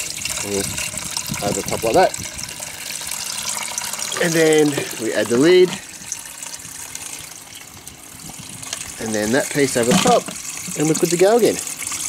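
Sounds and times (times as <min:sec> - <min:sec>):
water spilling over bucket rim: 0:00.0 - 0:12.0.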